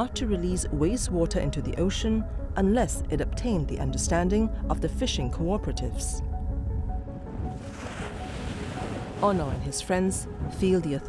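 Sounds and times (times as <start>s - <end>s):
soft background music: 0.0s - 11.0s
sea waves breaking on beach: 7.5s - 9.8s.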